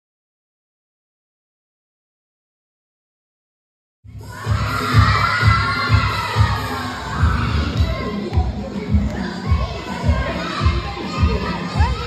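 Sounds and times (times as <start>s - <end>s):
dance music over loudspeakers: 4.1s - 12.0s
children shouting: 4.2s - 12.0s.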